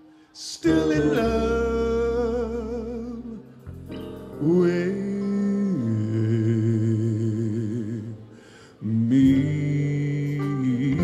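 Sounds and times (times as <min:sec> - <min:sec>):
man singing wordless note: 0:00.3 - 0:03.6, 0:04.4 - 0:11.0.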